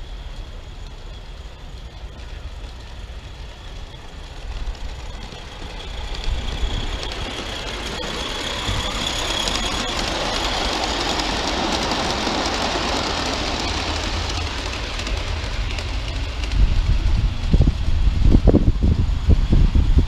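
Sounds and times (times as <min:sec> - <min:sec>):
small steam locomotive running: 0:00.0 - 0:20.0.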